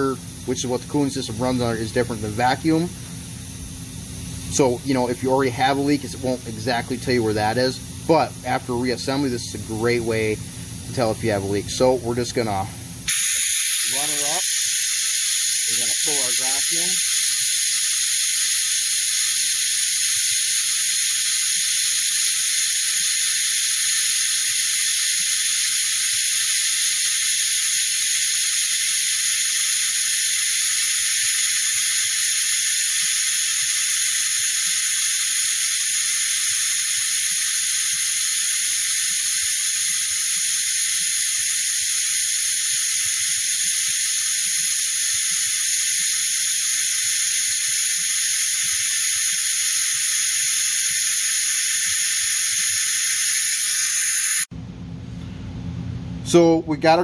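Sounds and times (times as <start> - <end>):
compressed air hissing: 0.0 - 54.5.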